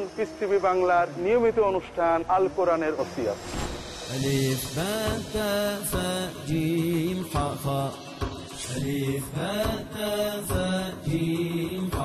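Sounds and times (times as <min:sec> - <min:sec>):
wordless chanted vocal music: 0:03.4 - 0:12.0.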